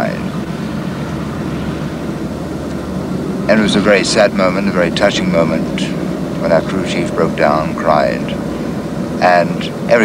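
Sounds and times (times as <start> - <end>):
helicopter rotor drone: 0.0 - 10.0.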